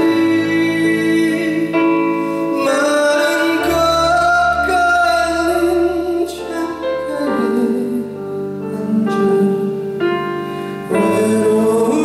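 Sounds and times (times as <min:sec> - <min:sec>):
keyboard and band accompaniment: 0:00.0 - 0:12.0
man singing a slow ballad: 0:00.0 - 0:12.0.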